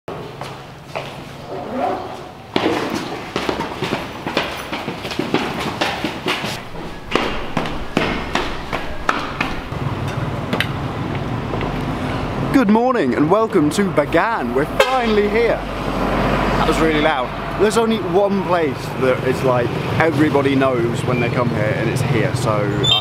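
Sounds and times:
footsteps down a staircase: 0.1 - 1.4, 2.2 - 11.7.

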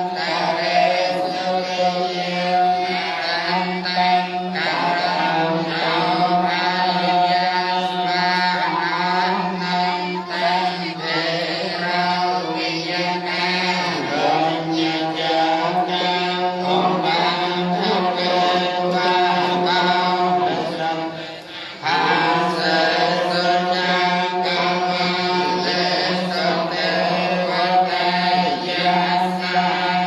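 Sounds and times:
group chanting on one pitch: 0.0 - 30.0.

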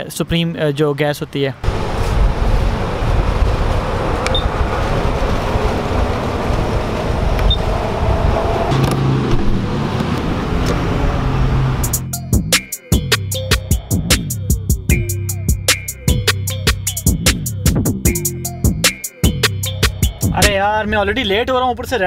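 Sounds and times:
traffic rumble: 0.0 - 12.4
fuel pump button beeps: 4.3 - 4.5.

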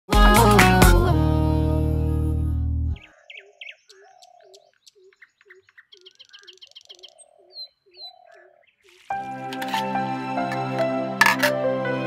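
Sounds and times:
fast bird trill: 3.0 - 9.1
birds chirping: 3.0 - 9.8.

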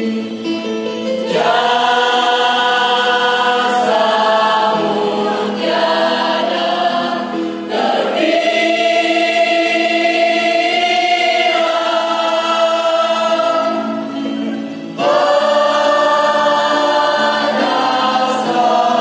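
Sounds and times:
mixed choir singing a hymn: 0.0 - 19.0.

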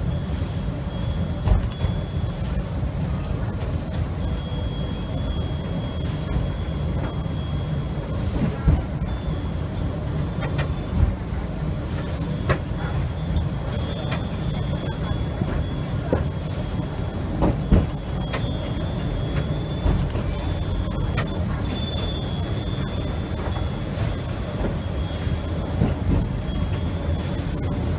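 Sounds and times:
train car rumbling: 0.0 - 27.9.

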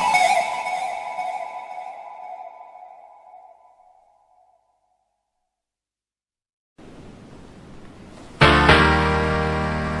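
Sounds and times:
held synthesizer note: 0.0 - 4.6.

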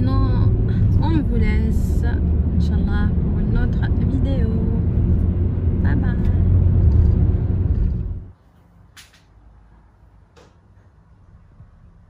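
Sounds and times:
woman speaking: 0.0 - 4.9, 5.8 - 6.6
car road and engine rumble: 0.0 - 8.4.

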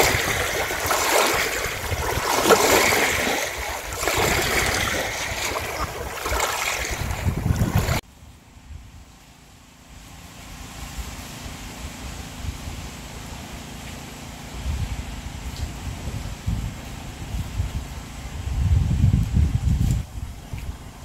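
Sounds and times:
wind buffeting microphone: 0.0 - 8.0, 14.6 - 21.0.

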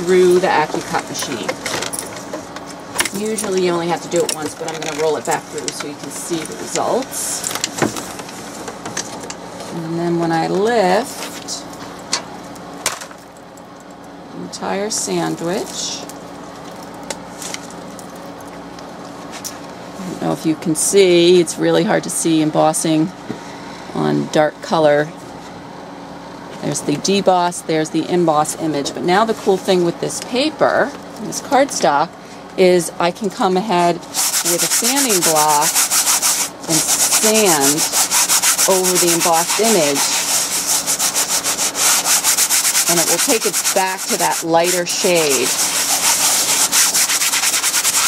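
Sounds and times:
steady low hum: 0.0 - 48.0
sanding block rasping on cardstock: 34.2 - 48.0.

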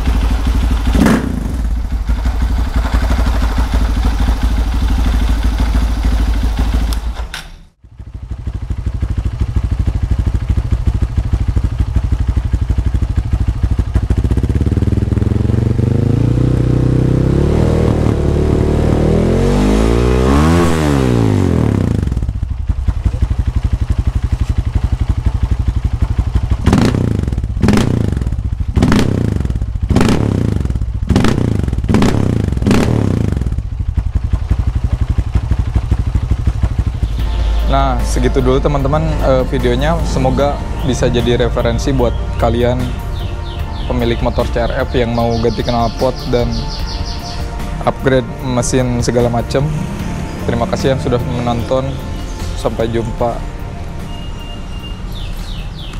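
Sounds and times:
motorcycle engine idling and revving: 0.0 - 55.9.

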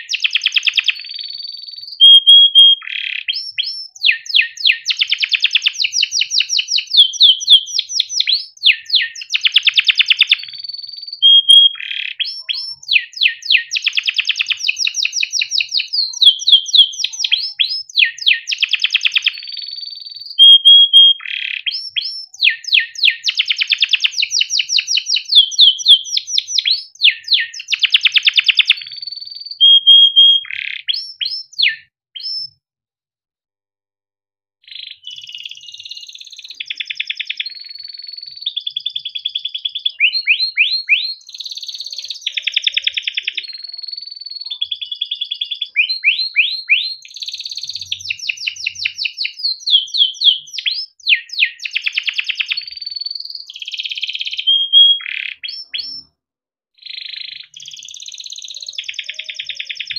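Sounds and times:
canary singing trills: 0.0 - 32.5, 34.6 - 56.1, 56.8 - 59.9.

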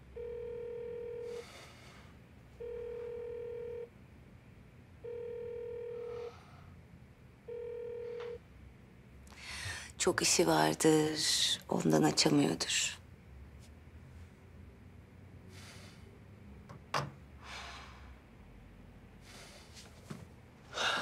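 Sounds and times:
telephone ringback beeps: 0.2 - 1.3, 2.6 - 3.9, 5.0 - 6.1, 7.5 - 8.4.

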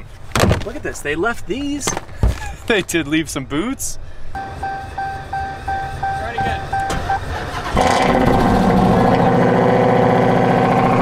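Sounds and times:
dashboard warning chime: 4.4 - 7.3
car engine starting and running: 4.4 - 11.0.

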